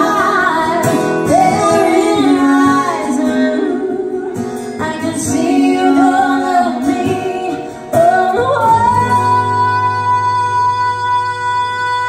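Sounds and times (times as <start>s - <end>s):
live pop band: 0.0s - 12.0s
woman singing: 0.0s - 12.0s.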